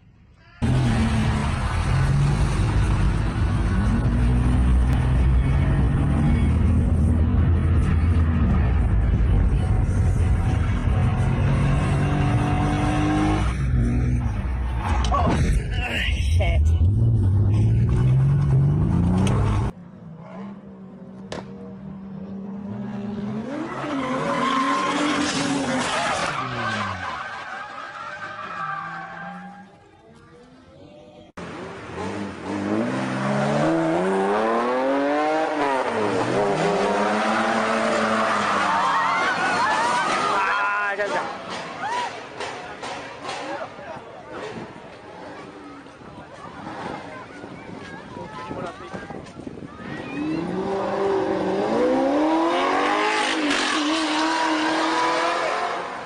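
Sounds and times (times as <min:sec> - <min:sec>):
car engines revving: 0:00.6 - 0:29.9, 0:31.4 - 0:56.0.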